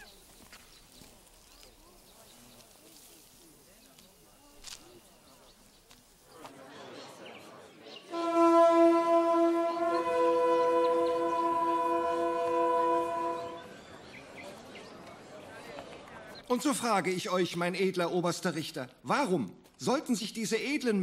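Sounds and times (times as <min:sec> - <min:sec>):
crowd murmur: 0:00.0 - 0:16.5
horns blowing held notes: 0:08.1 - 0:13.7.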